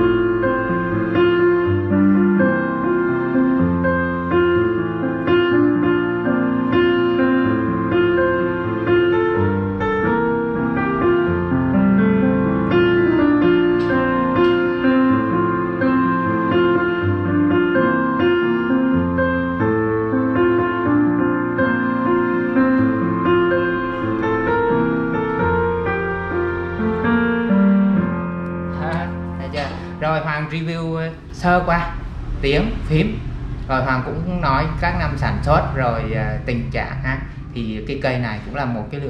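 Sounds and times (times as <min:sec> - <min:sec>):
digital piano chords and melody: 0:00.0 - 0:39.0.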